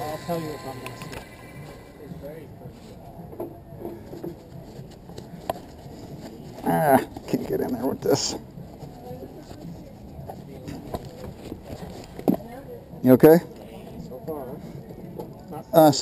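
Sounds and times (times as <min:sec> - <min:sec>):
people talking: 0:00.0 - 0:02.8.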